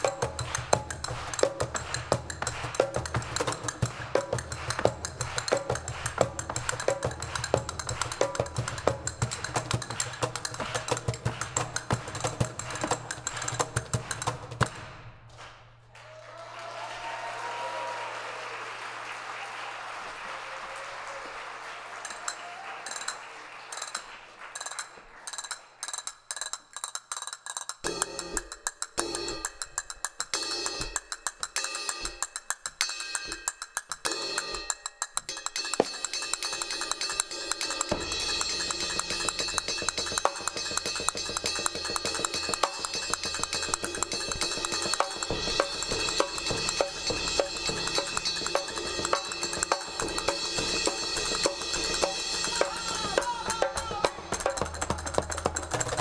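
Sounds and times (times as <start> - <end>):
conga and cymbal strokes: 0.0 - 15.0, 21.9 - 56.0
audience applause: 15.3 - 25.4.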